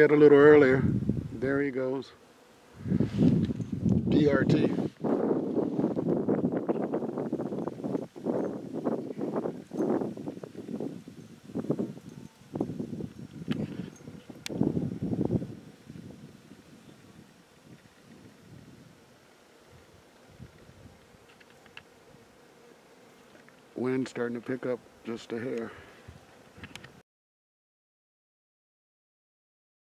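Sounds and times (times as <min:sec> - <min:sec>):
wind buffeting microphone: 0:00.5 - 0:01.6, 0:02.7 - 0:19.1, 0:19.7 - 0:21.3.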